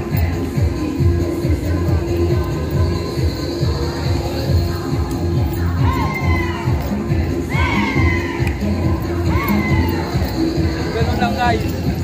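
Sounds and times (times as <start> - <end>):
dance music with steady beat: 0.0 - 12.0
loud whooping shouts: 5.8 - 6.8, 7.5 - 8.5, 9.2 - 10.1.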